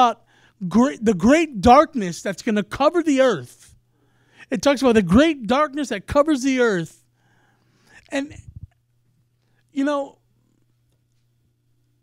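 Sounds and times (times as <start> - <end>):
man speaking into a microphone: 0.0 - 3.8, 4.4 - 7.0, 8.0 - 8.6, 9.8 - 10.2
faint low hum: 0.1 - 12.0.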